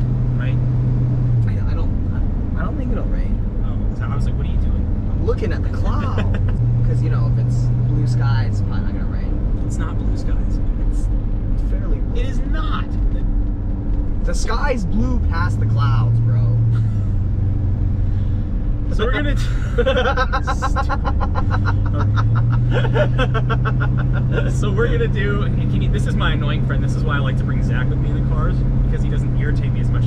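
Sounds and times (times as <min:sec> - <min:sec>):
car engine and road noise droning: 0:00.0 - 0:30.0
low talking: 0:01.5 - 0:13.3, 0:18.9 - 0:30.0.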